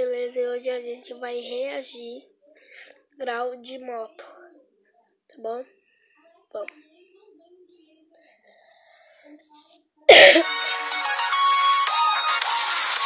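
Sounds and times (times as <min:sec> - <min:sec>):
electronic dance music: 0:10.5 - 0:13.0.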